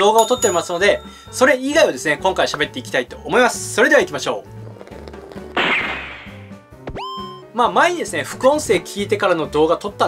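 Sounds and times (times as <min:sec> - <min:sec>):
quiet background music: 0:00.0 - 0:10.0
whip-like crack: 0:05.6 - 0:06.4.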